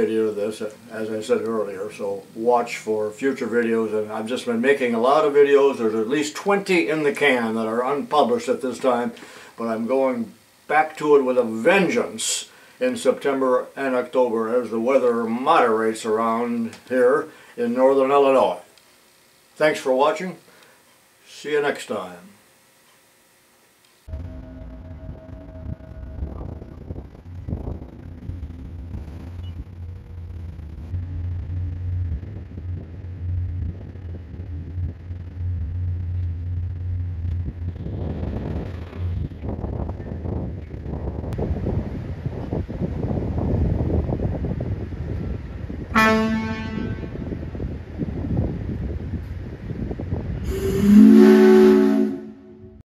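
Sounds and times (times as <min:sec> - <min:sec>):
boat engine hum: 0:24.1 - 0:41.2, 0:46.0 - 0:47.4, 0:50.5 - 0:52.8
wind and water rumble: 0:24.1 - 0:50.5
boat horn blast: 0:45.9 - 0:47.4, 0:50.4 - 0:52.8.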